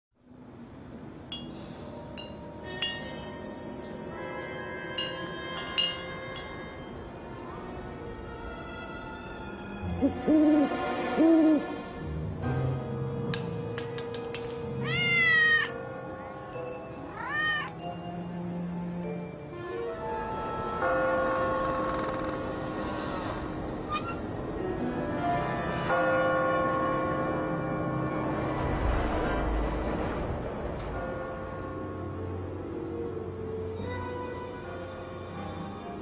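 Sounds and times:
soft background music: 0:00.9 - 0:36.0
cat meowing: 0:14.8 - 0:15.8, 0:17.1 - 0:17.8.

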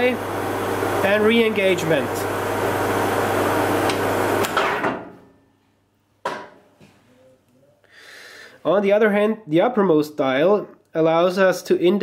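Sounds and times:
metal lathe running: 0:00.0 - 0:04.8.

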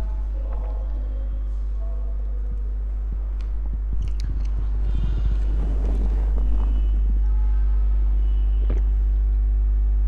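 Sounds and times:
low buzzy electrical hum: 0:00.0 - 0:10.0.

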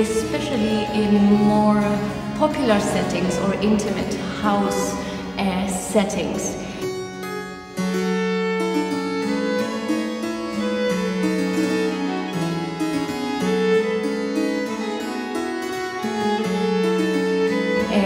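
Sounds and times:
bowed violin melody: 0:00.0 - 0:18.0
harpsichord plucked chords: 0:00.0 - 0:18.0.

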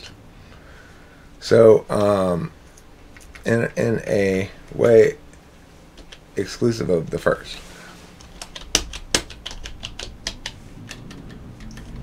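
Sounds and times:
computer keyboard typing: 0:06.0 - 0:06.2, 0:08.2 - 0:12.0.

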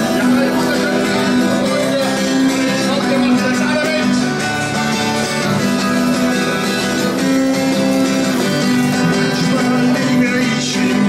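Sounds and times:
twelve-string acoustic guitar: 0:00.0 - 0:11.0.

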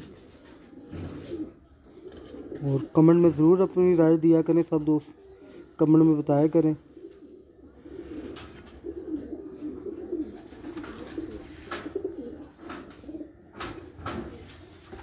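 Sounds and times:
pigeons cooing: 0:00.0 - 0:15.0.

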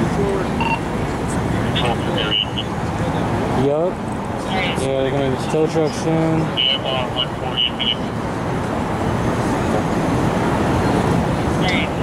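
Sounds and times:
people's voices: 0:00.0 - 0:08.3, 0:10.9 - 0:12.0
street traffic: 0:00.0 - 0:12.0.

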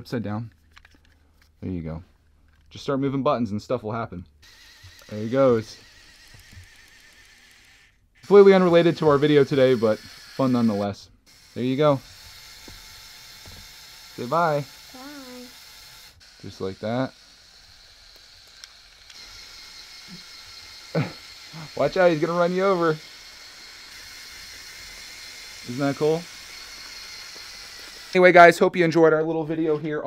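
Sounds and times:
toy electric motors whirring: 0:04.4 - 0:28.7.

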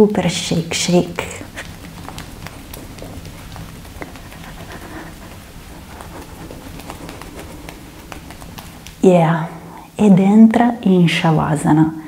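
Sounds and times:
pattering and rustling on yoga mat: 0:00.5 - 0:09.8.

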